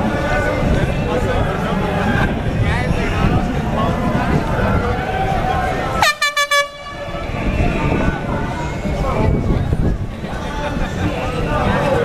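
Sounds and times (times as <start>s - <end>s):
crowd chatter: 0.0s - 12.0s
horn short toots: 6.0s - 7.3s.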